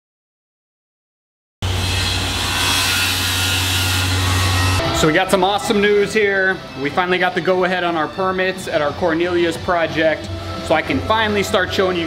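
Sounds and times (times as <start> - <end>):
power tool running: 1.6 - 5.1.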